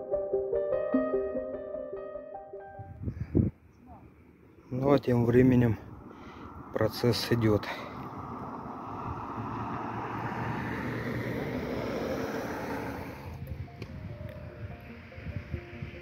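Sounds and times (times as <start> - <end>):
rushing outdoor noise: 3.0 - 16.0.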